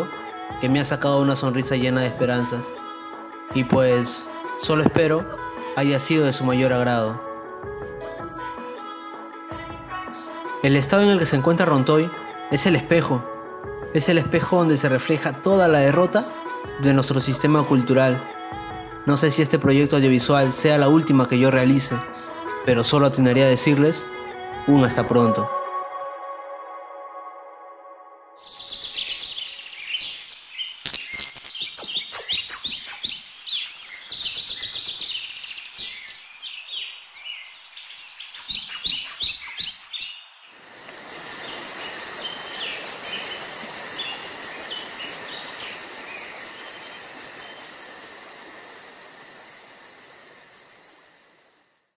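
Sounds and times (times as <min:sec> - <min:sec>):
birds chirping and calling: 0:28.4 - 0:40.3
steady hiss with high buzz: 0:40.6 - 0:51.5.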